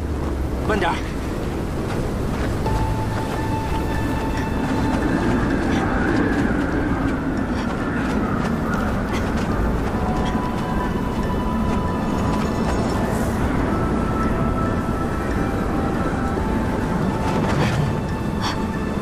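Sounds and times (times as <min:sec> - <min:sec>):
blizzard wind blowing: 0:00.0 - 0:19.0
soft music with held notes: 0:02.6 - 0:07.6.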